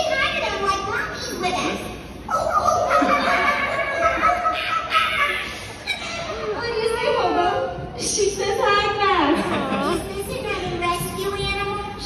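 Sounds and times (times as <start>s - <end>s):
children calling out: 2.2s - 6.7s.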